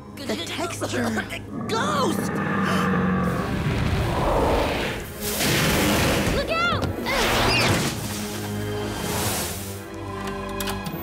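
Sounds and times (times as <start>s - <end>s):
background score music: 0.0s - 11.0s.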